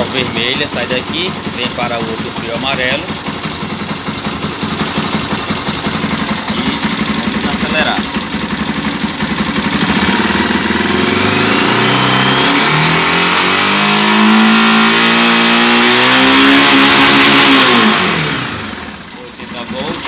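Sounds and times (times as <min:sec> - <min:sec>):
motorcycle engine revving: 0:00.0 - 0:20.0.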